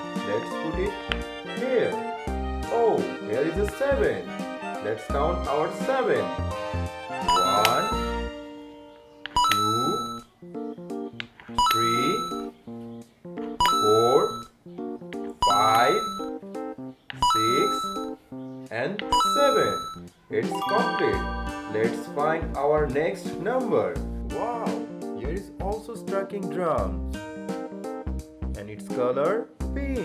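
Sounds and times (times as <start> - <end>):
children's background music: 0.0 - 30.0
person counting aloud: 7.3 - 8.1, 15.4 - 16.2
bell-like chime: 15.5 - 16.3, 20.6 - 22.3.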